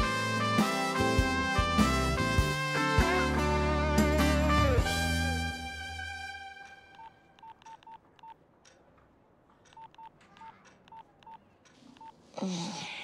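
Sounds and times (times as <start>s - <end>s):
music: 0.0s - 7.0s
mobile phone beeps: 6.9s - 8.4s, 9.8s - 11.4s, 12.0s - 12.2s.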